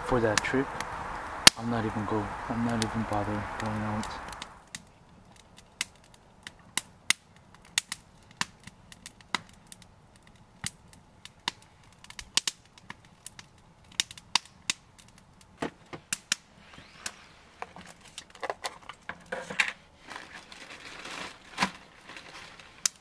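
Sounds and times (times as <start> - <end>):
wood fire crackling: 0.0 - 23.0.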